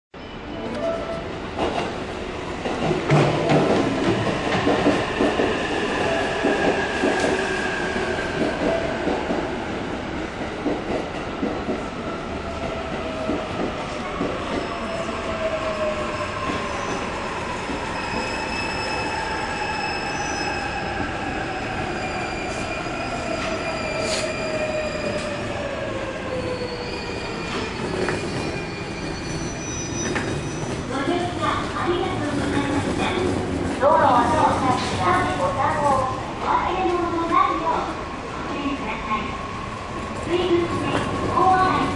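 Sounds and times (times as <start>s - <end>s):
train wheels rumbling: 1.5s - 41.9s.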